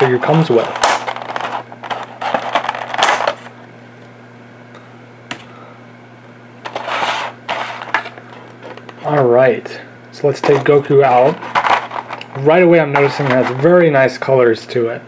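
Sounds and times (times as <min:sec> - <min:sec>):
plastic packaging crinkling: 0:00.0 - 0:03.5, 0:10.5 - 0:13.7.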